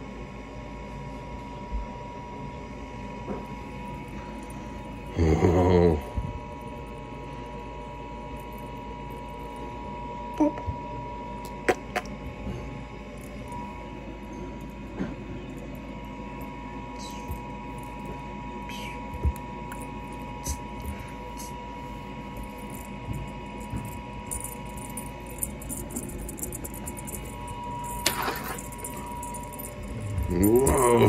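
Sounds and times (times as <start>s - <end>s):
steady high hum: 0.0s - 31.0s.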